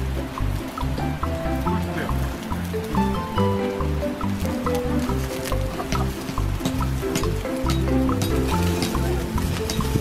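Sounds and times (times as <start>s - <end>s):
background music with light percussion: 0.0s - 10.0s.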